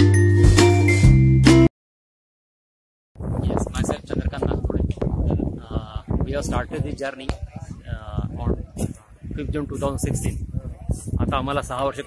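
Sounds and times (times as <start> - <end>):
man talking: 3.4 - 12.0.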